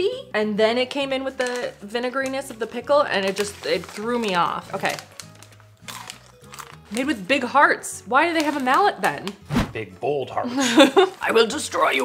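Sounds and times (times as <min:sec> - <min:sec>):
quiet bass line music: 0:05.9 - 0:12.0.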